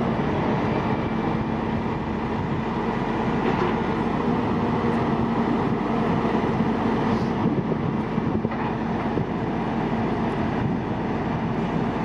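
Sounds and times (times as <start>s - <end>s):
heavy diesel engine running: 0.0s - 12.0s.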